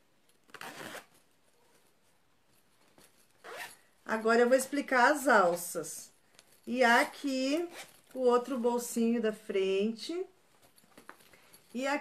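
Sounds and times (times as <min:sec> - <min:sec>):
zipper on backpack pocket: 0:00.5 - 0:01.2, 0:03.4 - 0:03.8.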